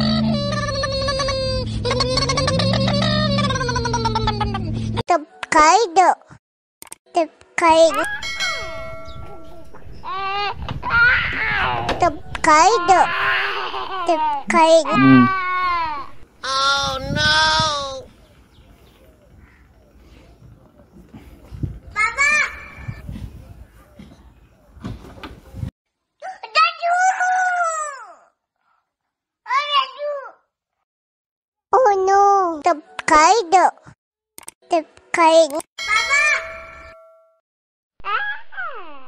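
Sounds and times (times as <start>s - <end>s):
bell chime: 8.1s - 10.0s, 35.8s - 37.4s.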